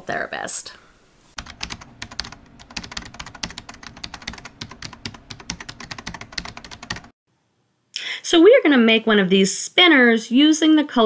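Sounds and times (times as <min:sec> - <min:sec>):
keyboard typing: 0:01.4 - 0:07.2.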